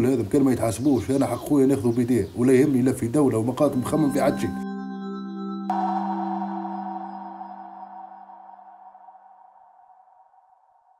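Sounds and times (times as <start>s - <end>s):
held musical chord of logo sting: 3.9s - 10.1s.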